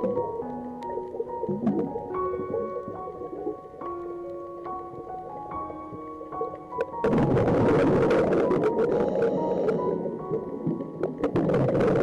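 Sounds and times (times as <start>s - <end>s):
background music with held notes: 0.0s - 12.0s
underwater bubbles gurgling: 0.0s - 12.0s.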